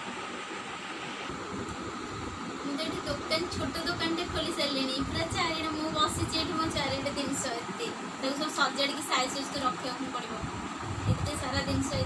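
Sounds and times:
background room hiss: 0.0 - 12.0.

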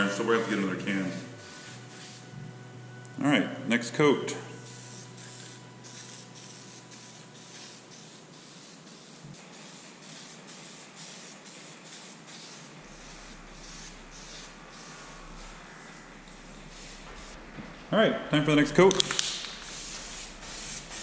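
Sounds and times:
spray paint can hissing: 0.0 - 2.2, 4.6 - 17.4, 18.9 - 21.0.

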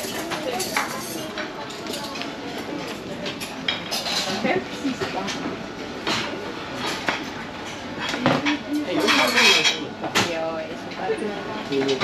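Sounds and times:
dishes and cutlery clinking: 0.0 - 10.4
background chatter: 0.0 - 12.0.

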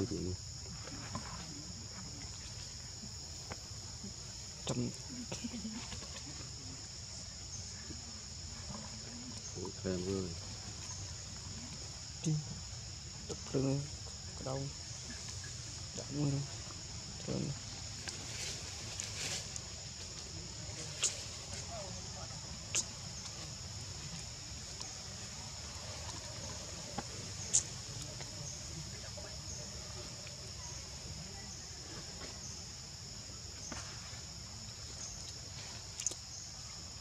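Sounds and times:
insect chorus buzzing: 0.0 - 37.0.

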